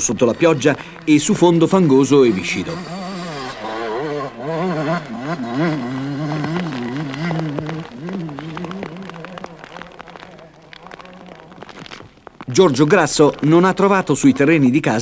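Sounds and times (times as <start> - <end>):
motorcycle engine revving: 0.0 - 15.0.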